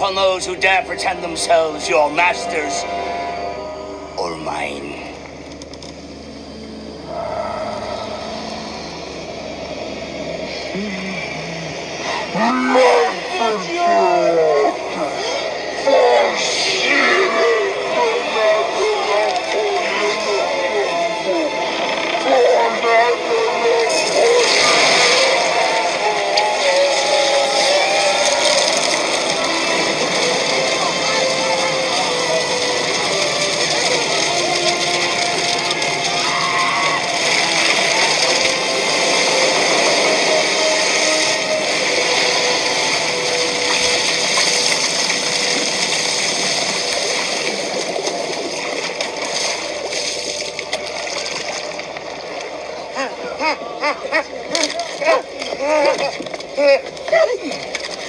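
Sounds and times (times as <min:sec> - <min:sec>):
film music: 0:00.0 - 0:58.0
steady rush of noise: 0:00.0 - 0:58.0
wavering voice-like wail: 0:07.0 - 0:44.8.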